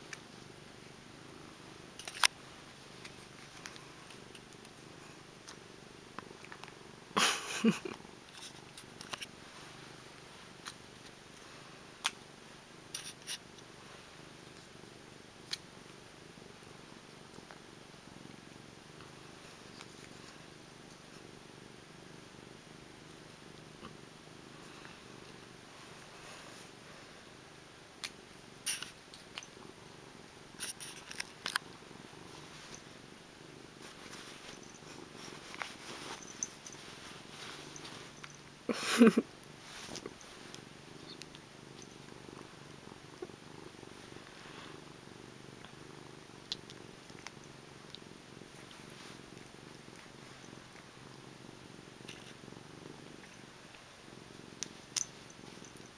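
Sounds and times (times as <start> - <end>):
cat purring: 0.0 - 55.9.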